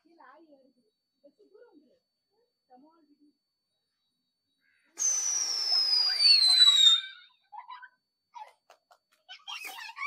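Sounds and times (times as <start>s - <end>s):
firework sparks hissing: 5.0s - 7.2s
firework shrill whistle: 5.0s - 7.4s.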